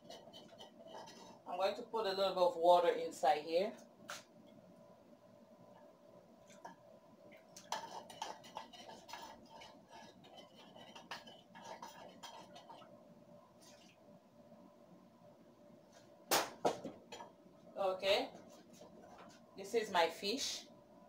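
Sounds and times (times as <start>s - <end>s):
clinks and scrapes of utensils: 0.0s - 1.5s, 7.6s - 12.9s.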